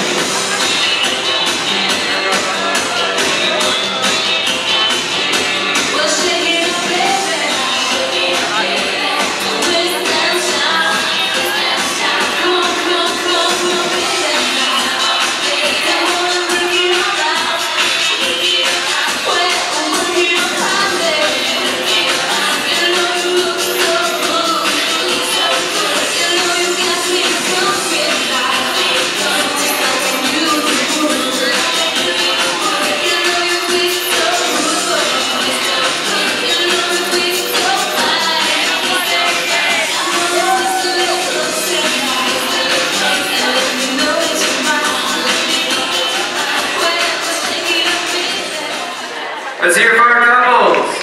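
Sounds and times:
crowd noise: 0.0s - 51.0s
swing music with singer: 0.0s - 51.0s.

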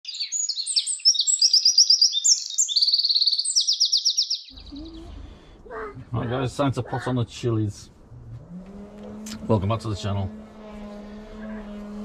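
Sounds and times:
birds chirping and trilling: 0.0s - 7.2s.

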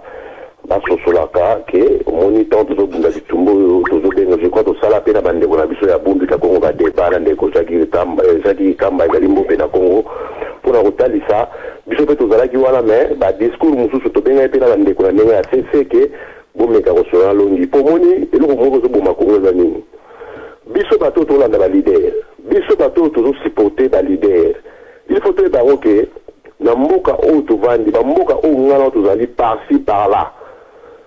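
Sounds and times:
person talking over telephone: 0.6s - 19.9s.

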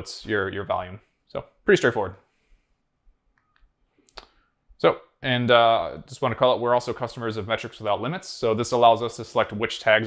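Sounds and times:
person speaking: 0.0s - 2.3s, 4.0s - 10.0s.

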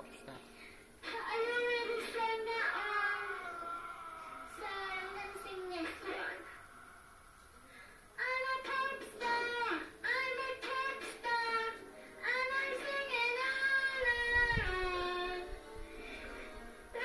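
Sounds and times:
girl singing into a toy microphone: 1.0s - 6.5s, 8.2s - 15.6s.

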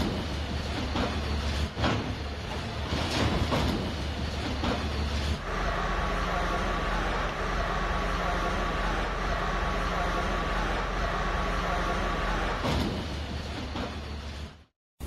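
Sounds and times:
excavator diesel engines running: 0.0s - 14.7s.

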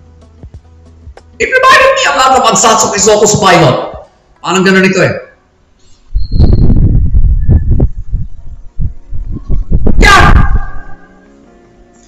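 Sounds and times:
microphone handling thumps and clicks: 6.1s - 10.0s.

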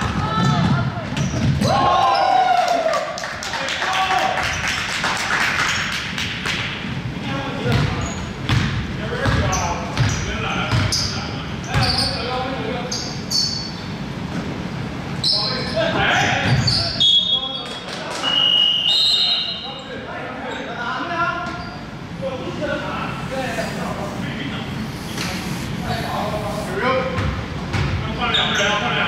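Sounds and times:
sneaker squeaks: 0.1s - 1.7s, 7.7s - 14.0s, 15.2s - 15.8s, 16.4s - 22.2s, 22.8s - 28.9s
basketball bouncing on wooden floor: 7.7s - 10.9s.

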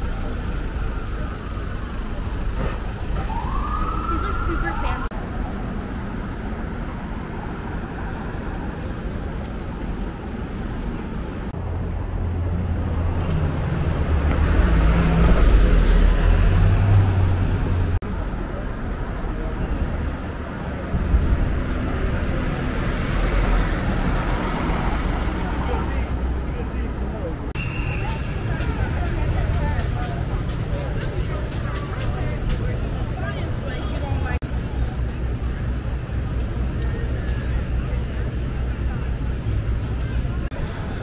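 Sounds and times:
street traffic: 0.0s - 41.0s
voices of passers-by: 0.0s - 41.0s.

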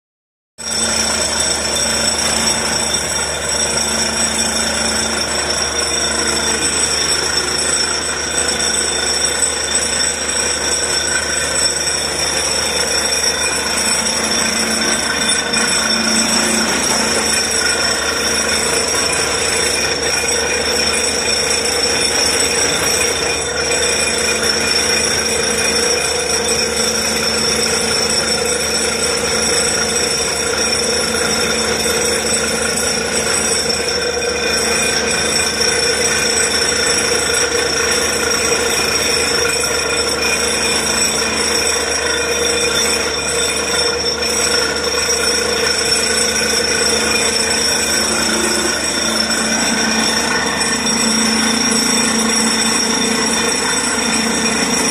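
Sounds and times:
drilling rig compressor running: 0.6s - 54.9s.

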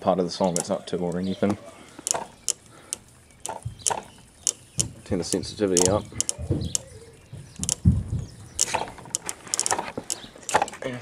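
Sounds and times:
solenoid valve clicking: 0.5s - 6.9s, 7.6s - 7.8s, 8.6s - 10.8s.

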